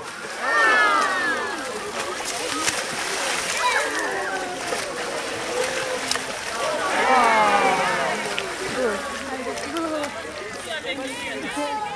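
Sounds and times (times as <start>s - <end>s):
people's voices: 0.0s - 11.9s
water splashing and churning: 0.0s - 11.9s.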